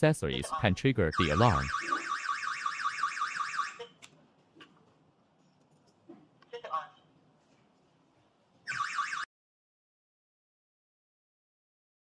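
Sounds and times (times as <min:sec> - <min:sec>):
alarm siren warbling: 0:01.2 - 0:03.9, 0:08.7 - 0:09.3.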